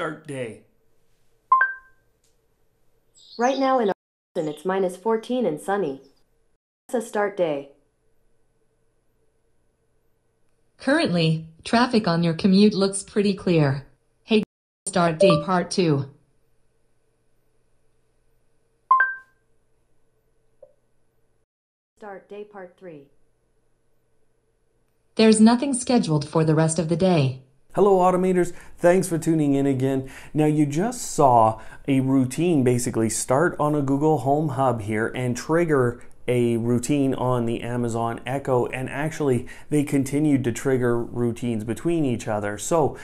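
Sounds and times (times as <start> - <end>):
two-tone electronic chime: 1.5 - 1.9, 15.2 - 15.7, 18.9 - 19.3
two-note rising chime: 15.2 - 15.6.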